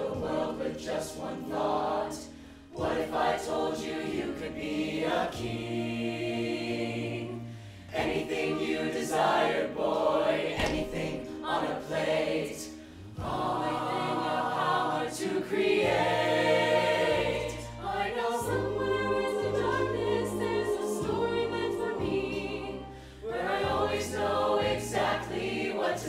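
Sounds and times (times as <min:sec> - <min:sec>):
choir singing in harmony: 0:00.0 - 0:26.0.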